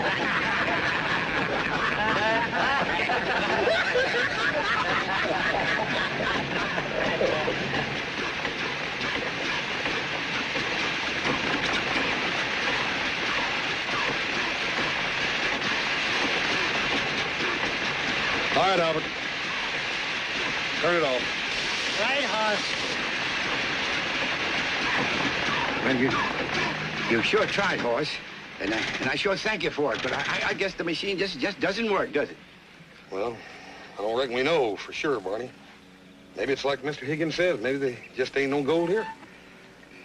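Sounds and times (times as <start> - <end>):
machine clattering and hissing: 0.0 - 33.2.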